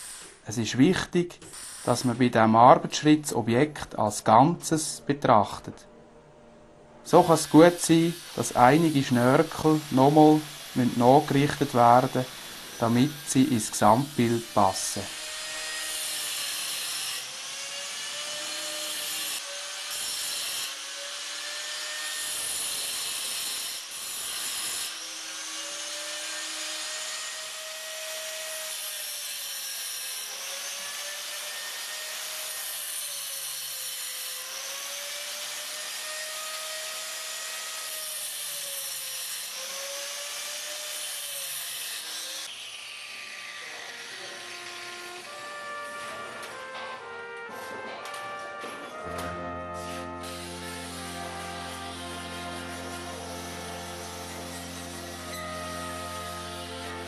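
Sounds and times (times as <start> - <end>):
angle grinder grinding metal: 0.0 - 3.4, 7.1 - 47.6, 48.6 - 57.0.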